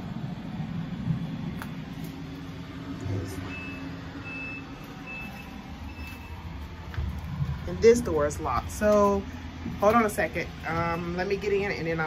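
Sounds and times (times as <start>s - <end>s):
low engine rumble: 0.0s - 12.0s
reversing alarm beeping: 3.2s - 6.7s.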